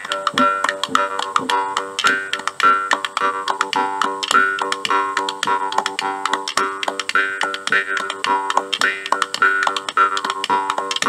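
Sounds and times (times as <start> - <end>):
jaw harp playing rhythmic tune: 0.0 - 11.0.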